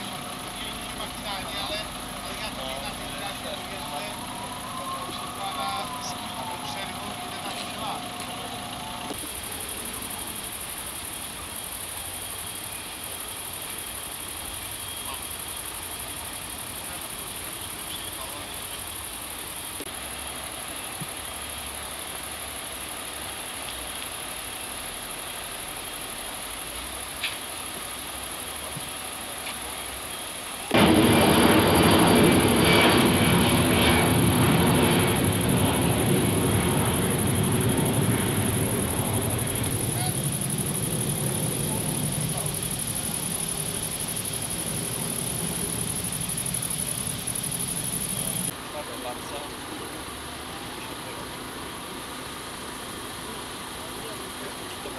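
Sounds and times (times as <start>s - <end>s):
faint outdoor background: 0.0s - 54.9s
loud engine-like roar: 30.7s - 48.5s.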